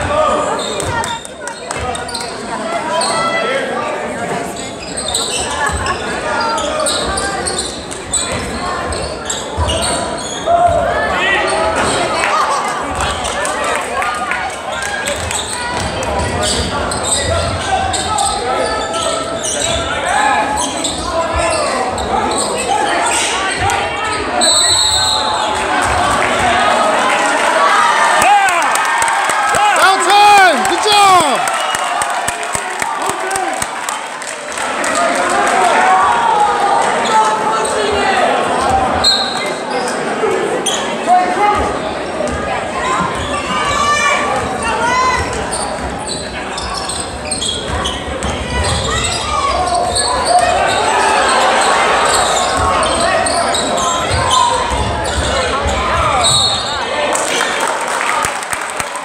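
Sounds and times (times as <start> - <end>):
spectators' voices: 0.0 - 59.0
referee's whistle: 24.4 - 25.4, 39.0 - 39.6, 56.2 - 56.8.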